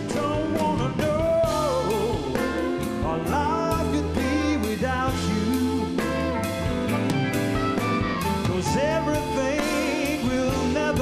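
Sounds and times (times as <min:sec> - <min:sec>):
man singing: 0:00.0 - 0:06.5, 0:08.2 - 0:11.0
bass: 0:00.0 - 0:11.0
drums: 0:00.0 - 0:11.0
electric guitars: 0:00.0 - 0:11.0
harmonica: 0:00.0 - 0:11.0.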